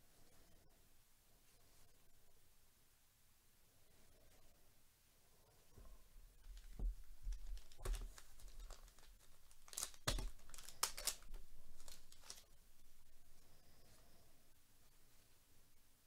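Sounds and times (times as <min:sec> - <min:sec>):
wrapper torn open and crinkled: 0:07.3 - 0:12.4.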